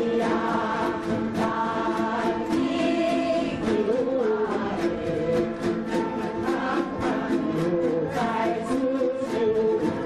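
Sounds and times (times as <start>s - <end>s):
group singing in unison: 0.0s - 10.0s
plucked lutes ensemble: 0.0s - 10.0s.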